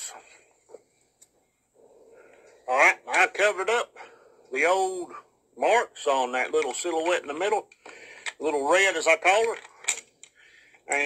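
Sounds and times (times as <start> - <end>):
soft breath: 1.8 - 2.7, 3.9 - 5.3, 7.8 - 8.4, 10.3 - 10.9
man talking: 2.7 - 7.7, 8.4 - 9.6.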